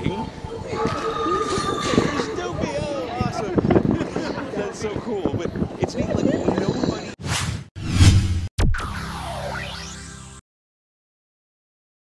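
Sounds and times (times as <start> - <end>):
whoosh sound effects: 7.2 - 10.1.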